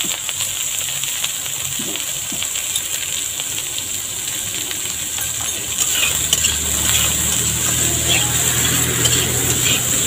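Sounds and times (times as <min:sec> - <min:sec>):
vegetables sizzling in hot oil: 0:00.0 - 0:10.0
metal spatula tapping pan: 0:05.2 - 0:10.0.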